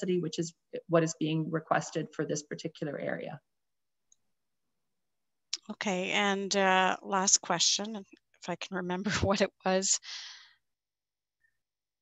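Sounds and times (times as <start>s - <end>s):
woman speaking: 0.0s - 3.4s, 5.6s - 10.4s.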